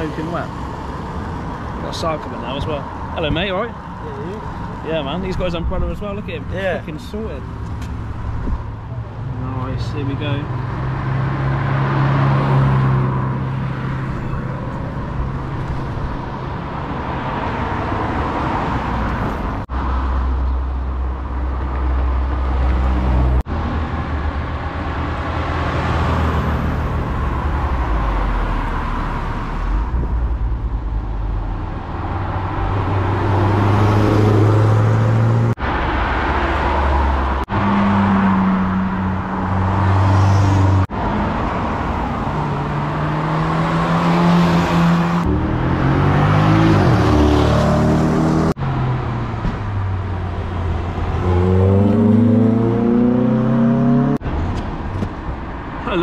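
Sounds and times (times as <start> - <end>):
cars accelerating past: 7.9 - 14.4, 21.7 - 54.6.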